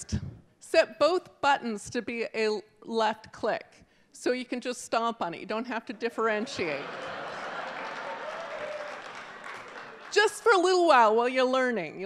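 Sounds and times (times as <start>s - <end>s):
audience applauding: 6.7s - 10.6s.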